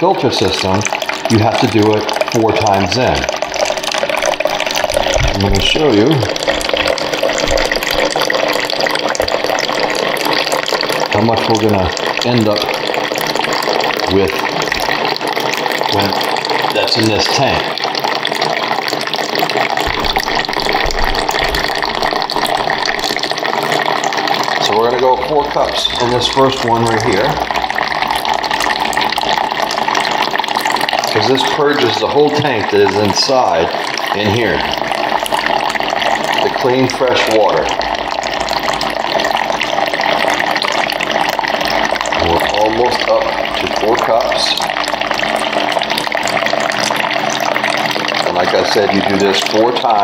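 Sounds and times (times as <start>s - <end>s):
water pouring into plastic cup: 0.0s - 50.0s.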